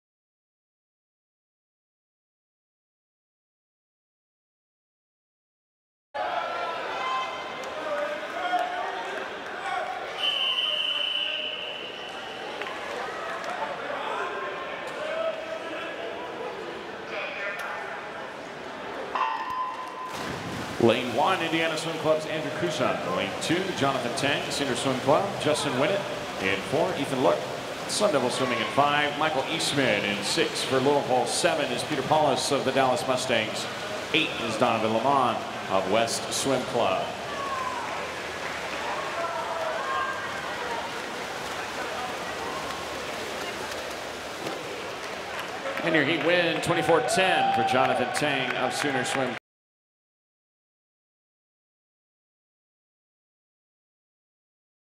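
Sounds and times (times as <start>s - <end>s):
faint shouts and cheers: 6.2s - 16.4s, 37.1s - 42.8s, 45.7s - 49.4s
echoing chatter of many voices: 6.2s - 19.2s
crowd noise: 6.2s - 49.4s
swimmers splashing: 20.0s - 49.2s.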